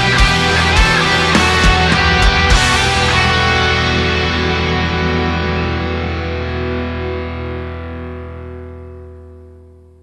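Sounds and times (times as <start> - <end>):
bass guitar: 0.0 - 10.0
distorted electric guitar chord: 0.0 - 10.0.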